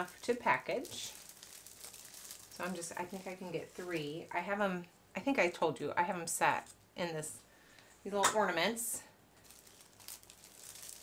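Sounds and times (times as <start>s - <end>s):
plastic film crinkling: 0.0s - 4.4s, 9.4s - 11.0s.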